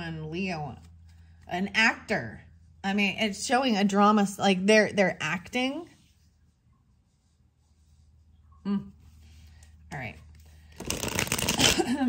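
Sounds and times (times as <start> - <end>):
cards being shuffled: 10.6 - 11.9.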